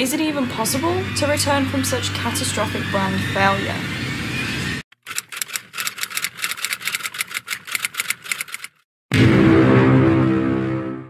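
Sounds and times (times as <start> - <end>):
typewriter keys clacking: 5.0 - 8.8.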